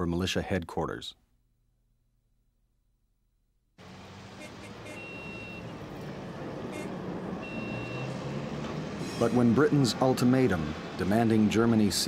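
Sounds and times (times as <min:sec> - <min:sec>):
motor traffic: 0:03.8 - 0:12.0
high beep-like tone: 0:04.9 - 0:05.6, 0:07.4 - 0:08.1.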